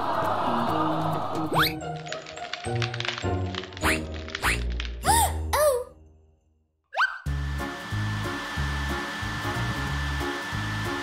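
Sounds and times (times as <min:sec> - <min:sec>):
hair dryer running: 0:07.3 - 0:11.0.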